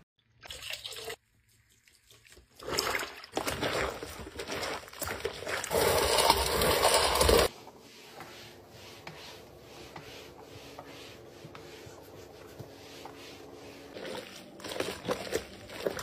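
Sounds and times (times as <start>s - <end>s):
mop sloshing in bucket of water: 1.8s - 7.5s, 10.0s - 16.0s
mop pad rubbing wooden floor: 5.8s - 16.0s.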